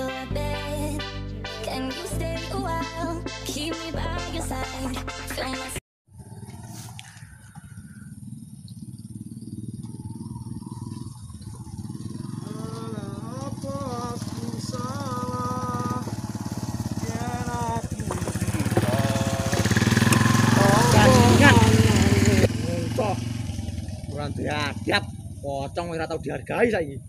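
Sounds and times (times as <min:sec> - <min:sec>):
motorcycle engine running: 0:06.1 - 0:27.0.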